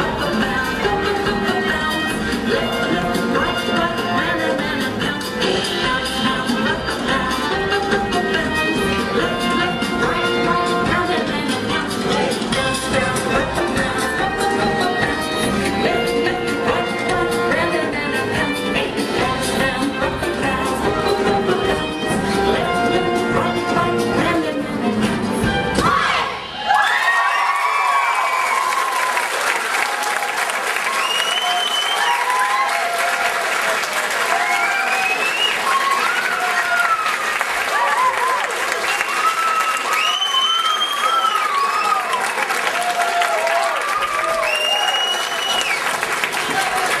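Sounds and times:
song music: 0.0 - 26.4
audience applauding and cheering: 25.8 - 47.0
children shouting: 40.7 - 44.5.

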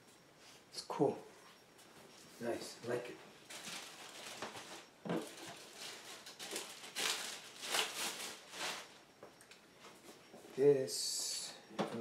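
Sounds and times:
plastic wrap crinkling: 3.5 - 9.0.

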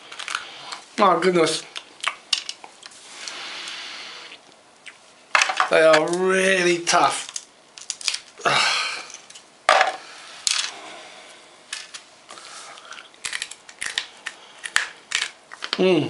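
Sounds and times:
hard biscuit cracking: 7.2 - 9.4, 11.8 - 15.8.

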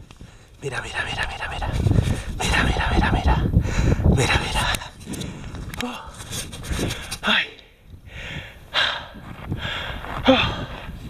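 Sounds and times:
man breathing heavily: 1.2 - 11.0.

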